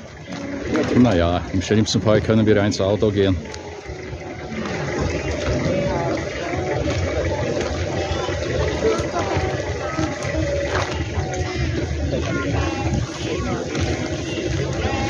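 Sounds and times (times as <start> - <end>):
indistinct voices: 0.0 - 15.0.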